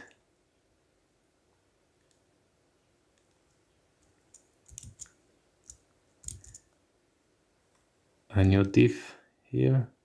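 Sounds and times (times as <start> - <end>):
mouse and keyboard clicks: 3.1 - 6.8.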